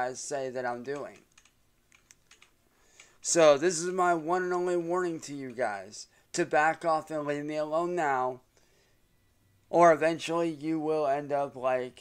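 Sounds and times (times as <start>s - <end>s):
computer keyboard typing: 0.9s - 3.3s.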